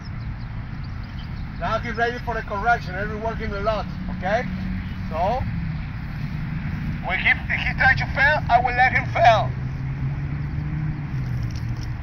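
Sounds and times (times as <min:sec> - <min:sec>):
motor droning hum: 0:00.0 - 0:12.0.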